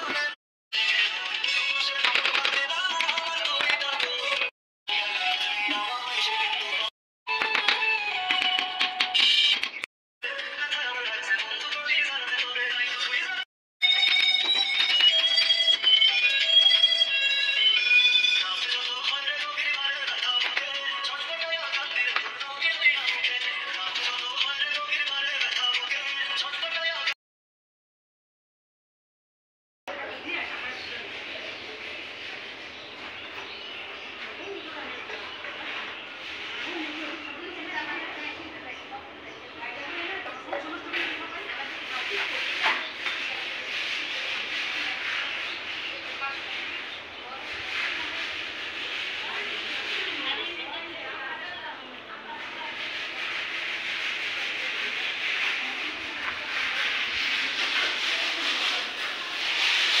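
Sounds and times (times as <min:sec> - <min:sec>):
scrubbing on wet concrete floor: 0:34.2 - 0:38.4, 0:39.8 - 0:51.2, 0:52.1 - 1:00.0.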